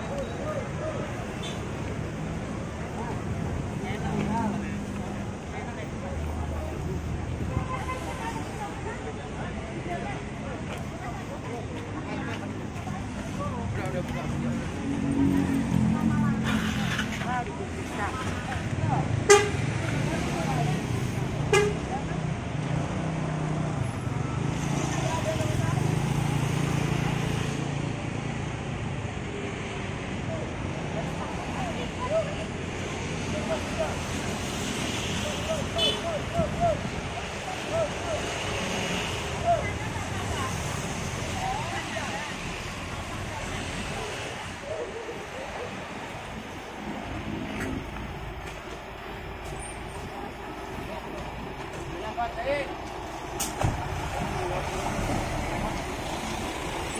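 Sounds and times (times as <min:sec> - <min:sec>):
voices: 0:00.0 - 0:56.9.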